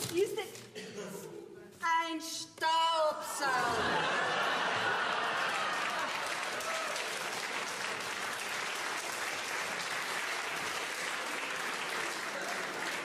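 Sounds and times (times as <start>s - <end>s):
audience applauding: 4.3s - 13.0s.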